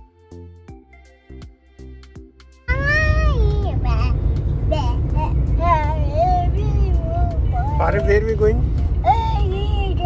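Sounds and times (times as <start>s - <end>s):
soft background music: 0.0s - 10.0s
car road rumble: 2.7s - 10.0s.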